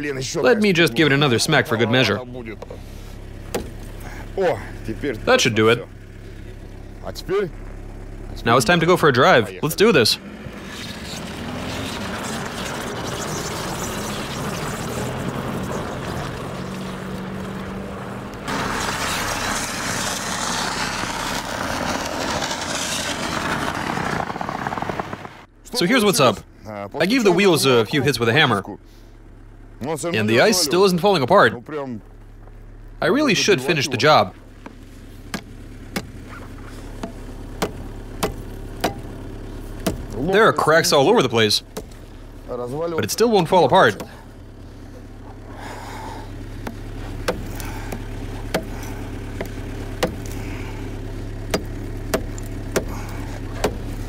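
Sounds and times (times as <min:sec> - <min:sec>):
steady low hum: 0:00.0 - 0:11.0, 0:25.4 - 0:54.0
car engine under throttle: 0:00.0 - 0:54.0
tyres rumbling on snow: 0:00.0 - 0:54.0
hammer striking ice in tire: 0:37.0 - 0:39.1, 0:39.8 - 0:40.2, 0:46.6 - 0:48.8, 0:49.4 - 0:50.4, 0:51.5 - 0:54.0.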